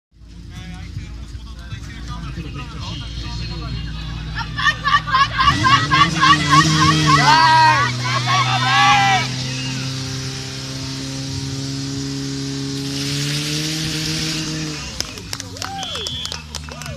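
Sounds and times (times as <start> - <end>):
spectators cheering: 3.9 - 10.3, 14.8 - 16.9
pump engine running hard: 5.0 - 16.8.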